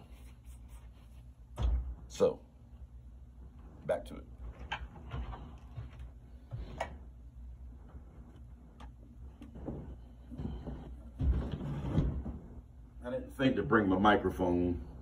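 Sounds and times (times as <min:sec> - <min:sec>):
heavy thump: 0:01.5 - 0:02.2.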